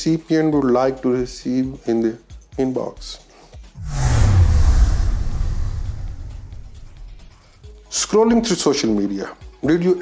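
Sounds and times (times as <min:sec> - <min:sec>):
deep boom and rumble: 0:03.8 - 0:07.5.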